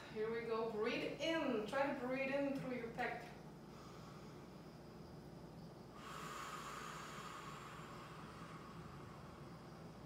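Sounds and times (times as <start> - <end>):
person breathing deeply: 3.6 - 4.8, 5.9 - 10.0.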